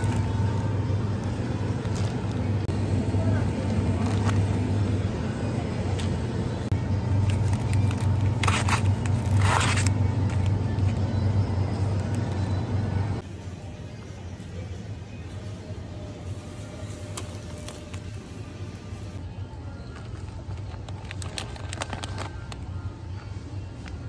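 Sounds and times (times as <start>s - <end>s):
music: 0.0s - 24.0s
steady low hum: 0.0s - 24.0s
plastic packaging crinkling: 19.8s - 22.8s.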